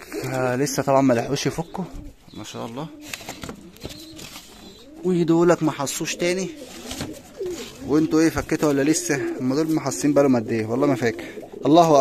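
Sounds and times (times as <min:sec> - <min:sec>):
pigeons cooing softly: 0:00.0 - 0:12.0.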